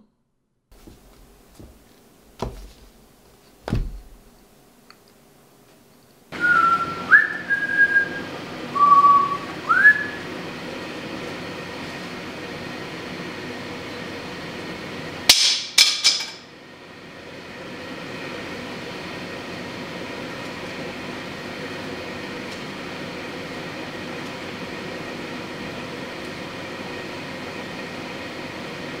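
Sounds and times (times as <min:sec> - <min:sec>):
person whistling: 0:06.4 - 0:10.2.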